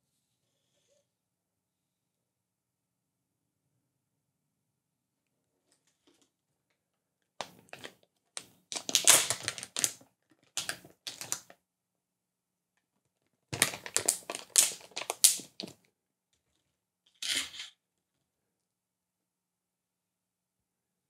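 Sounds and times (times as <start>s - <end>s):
plastic packaging crinkling: 7.4s - 7.9s, 8.7s - 11.5s, 13.6s - 15.8s.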